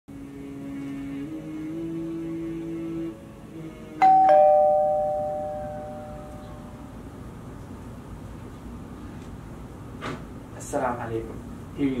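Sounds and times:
two-tone doorbell chime: 4.0s - 6.6s.

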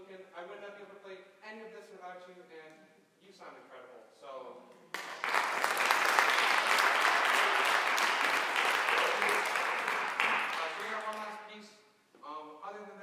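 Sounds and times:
audience applauding: 4.9s - 11.4s.

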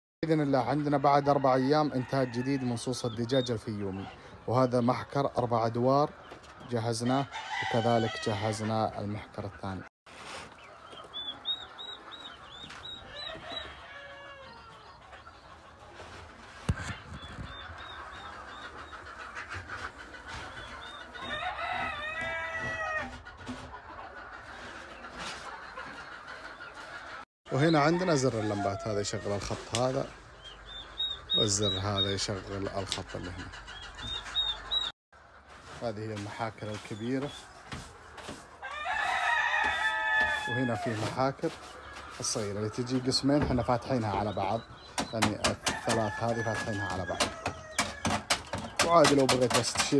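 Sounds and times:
chicks peeping: 0.3s - 49.9s
rooster crowing: 7.3s - 8.5s, 13.1s - 14.7s, 21.2s - 23.1s, 38.6s - 40.9s, 45.7s - 48.2s.

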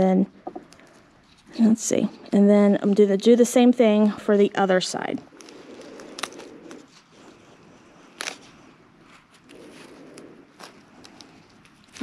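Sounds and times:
tape rustling: 0.5s - 3.0s, 5.2s - 12.0s.

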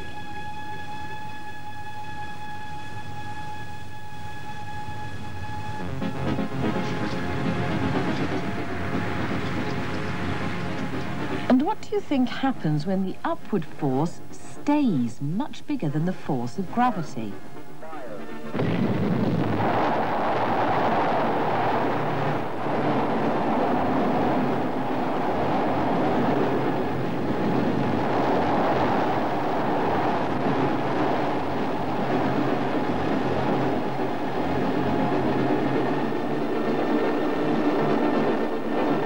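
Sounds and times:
rocket engines roaring at launch: 5.1s - 12.8s, 17.8s - 39.0s.

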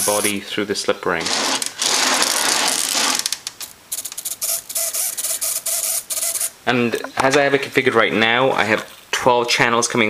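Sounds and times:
ratcheting mechanical clicks: 3.0s - 6.5s.

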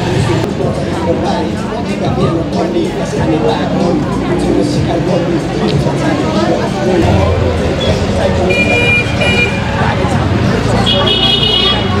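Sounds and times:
passing traffic: 0.0s - 12.0s
people's voices: 0.0s - 12.0s
vehicle horn beeping: 7.8s - 9.8s, 10.8s - 12.0s.

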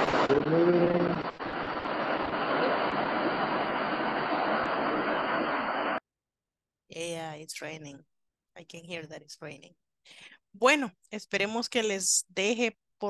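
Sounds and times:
heavy rain hiss: 0.0s - 6.0s.

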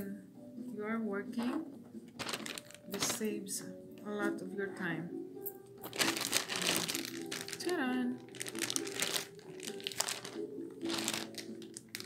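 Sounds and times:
soft background music: 0.0s - 12.0s
plastic bag crinkling: 2.2s - 3.3s, 5.8s - 12.0s.

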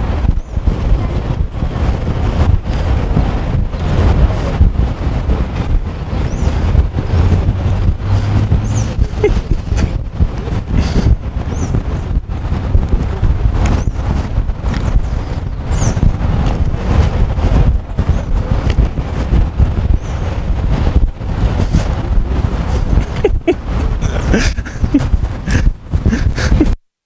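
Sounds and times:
passing street traffic: 0.0s - 26.6s
wind rumbling on microphone: 0.0s - 26.8s.

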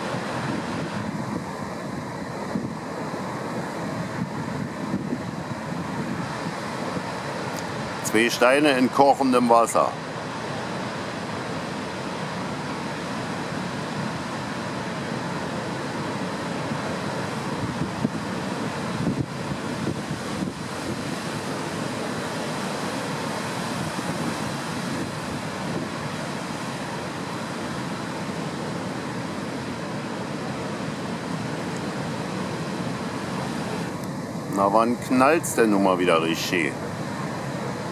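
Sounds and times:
wind on microphone: 0.0s - 7.8s, 17.4s - 29.9s
sea surf breaking on rocks: 0.0s - 37.9s.

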